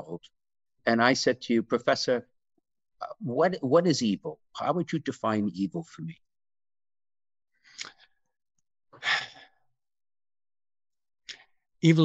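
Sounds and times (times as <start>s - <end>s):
man sighing: 9.0s - 9.5s.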